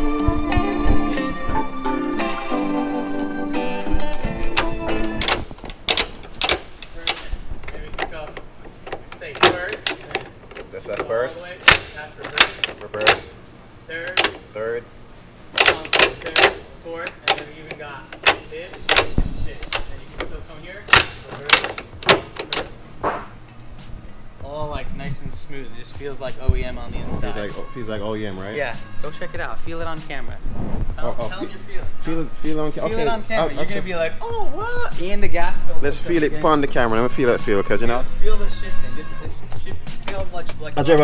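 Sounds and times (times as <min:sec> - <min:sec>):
background music: 0:00.0 - 0:07.2, 0:15.6 - 0:41.0
gear linkage clicking and clunking: 0:04.4 - 0:13.4, 0:14.0 - 0:14.5, 0:15.6 - 0:22.8.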